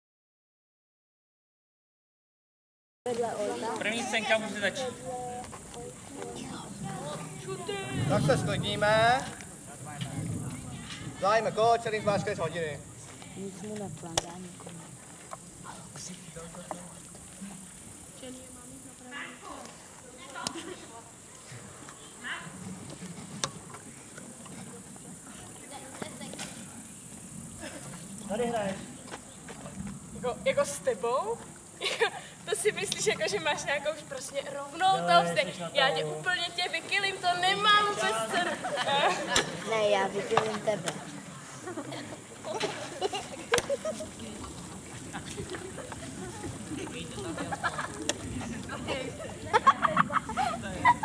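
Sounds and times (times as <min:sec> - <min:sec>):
people talking indistinctly: 0:03.1 - 0:22.6.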